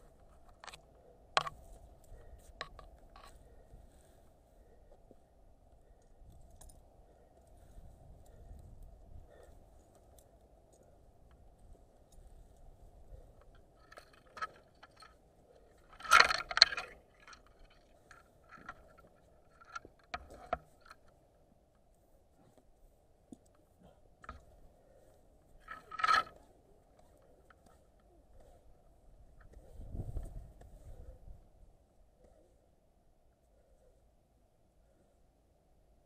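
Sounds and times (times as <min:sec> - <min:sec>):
metal climbing hardware clinking: 0:06.0 - 0:08.8, 0:09.4 - 0:21.2, 0:25.5 - 0:28.1.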